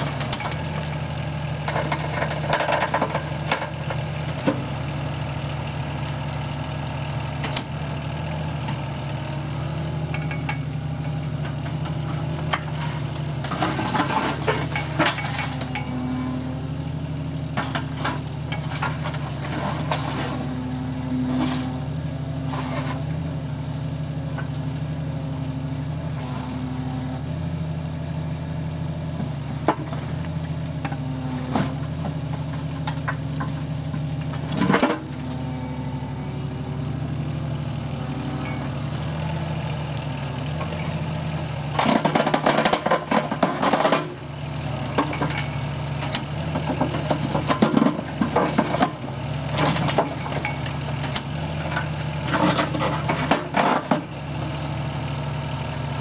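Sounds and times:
excavator diesel engine running: 0.0s - 56.0s
bucket crusher rattling and knocking: 41.8s - 44.2s, 46.6s - 49.0s, 51.8s - 54.1s.

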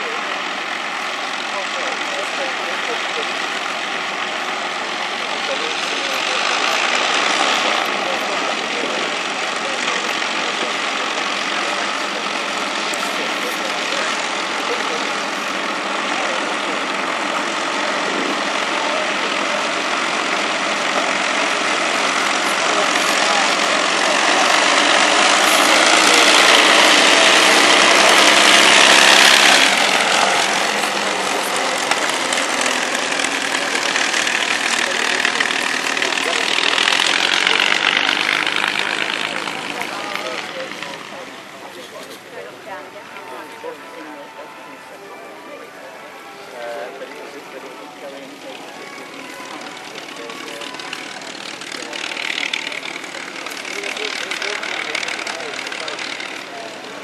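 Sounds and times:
propeller aircraft engines droning: 0.0s - 57.0s.

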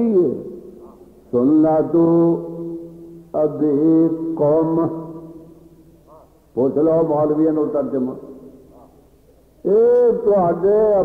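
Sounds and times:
man chanting in sung notes: 3.4s - 5.1s.

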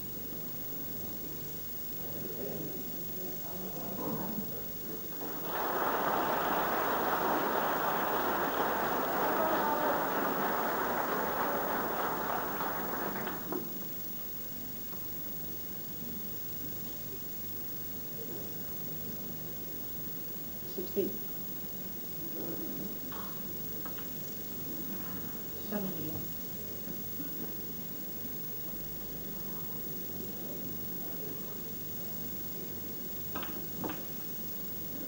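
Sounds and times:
low room murmur: 0.0s - 35.0s
audience applauding: 5.2s - 13.9s.

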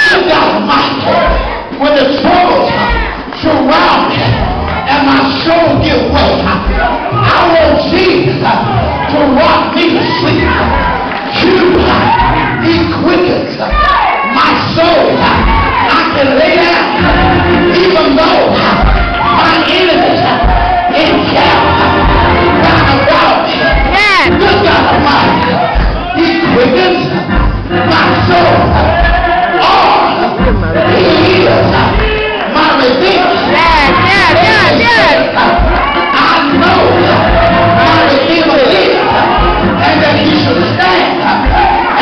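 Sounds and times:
church music with heavy bass: 0.0s - 42.0s
congregation shouting: 0.0s - 42.0s
preacher chanting into microphone: 0.0s - 42.0s.

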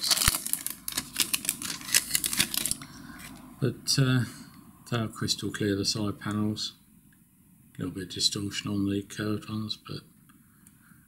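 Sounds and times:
plastic bag crinkling: 0.0s - 3.4s.

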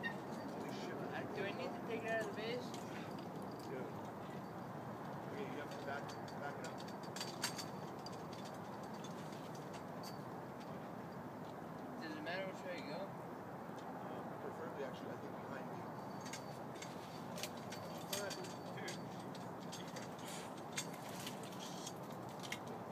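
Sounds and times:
outdoor background noise: 0.0s - 22.9s.

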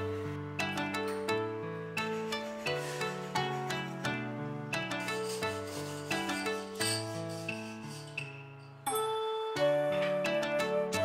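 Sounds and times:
background music: 0.0s - 11.0s
hacksaw cutting wood: 5.0s - 8.2s.

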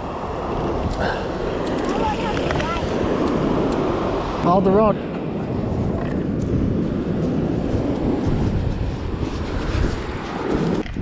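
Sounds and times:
surf breaking on beach: 0.0s - 11.0s
wind buffeting microphone: 0.0s - 11.0s.

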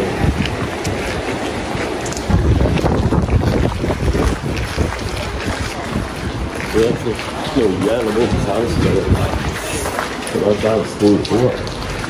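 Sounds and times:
fast-flowing water rushing: 0.0s - 12.0s
wind buffeting microphone: 0.0s - 12.0s.

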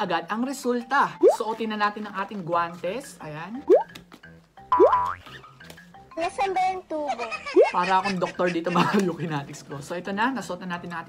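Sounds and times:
soft background music: 0.0s - 11.0s
cartoon boing effect: 4.7s - 5.2s.

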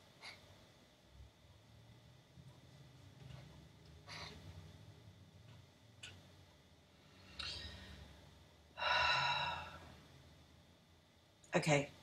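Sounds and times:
heavy exhale sigh: 8.8s - 9.9s.

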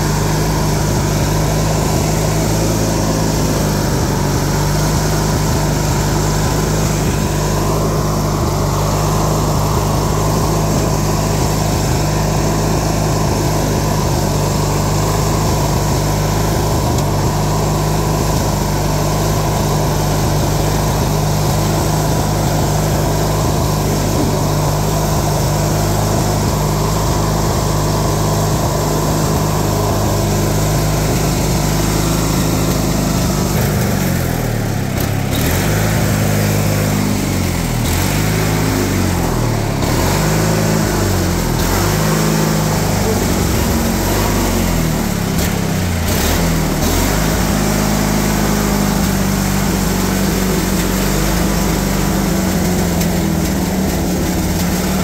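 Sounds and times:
lawn tractor engine running: 0.0s - 55.0s.

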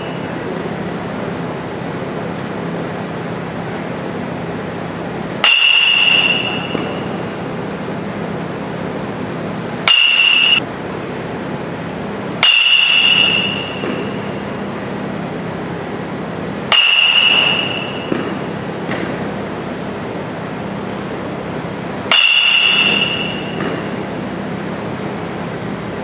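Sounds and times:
steady background hum: 0.0s - 26.0s
metal bat hitting ball: 5.4s - 7.3s, 9.8s - 10.6s, 12.4s - 14.4s, 16.7s - 19.2s, 22.1s - 24.1s.

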